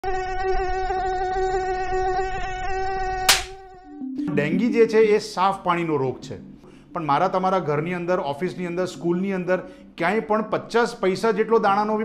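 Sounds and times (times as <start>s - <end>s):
mosquito buzzing: 0.0s - 4.0s
sharp slap: 3.3s - 3.6s.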